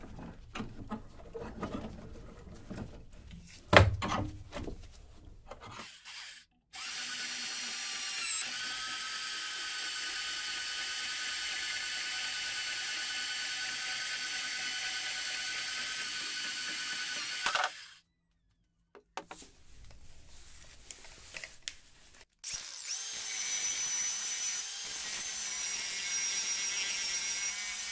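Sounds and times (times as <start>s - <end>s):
band saw cutting steel: 5.6s - 12.9s, 22.4s - 27.9s.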